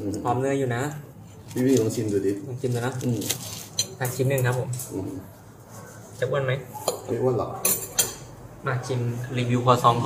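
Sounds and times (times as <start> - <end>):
cutlery scraping ceramic plate: 6.8 - 8.3.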